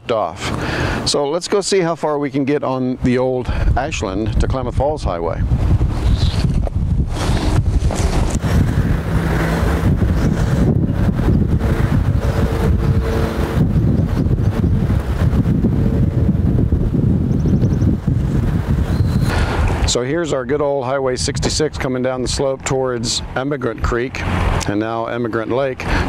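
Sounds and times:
wind buffeting microphone: 2.9 - 26.0.

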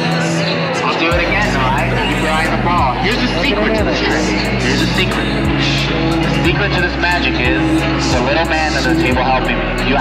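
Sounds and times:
background music with low bass: 0.0 - 10.0
person talking: 1.1 - 10.0.

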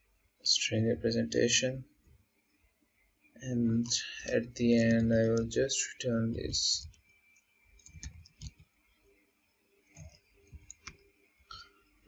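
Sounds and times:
computer keyboard typing: 3.8 - 5.5, 7.8 - 8.7, 9.9 - 11.6.

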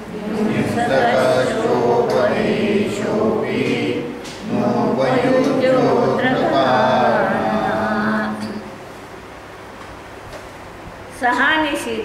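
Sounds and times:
voices chanting in unison: 0.0 - 8.7.

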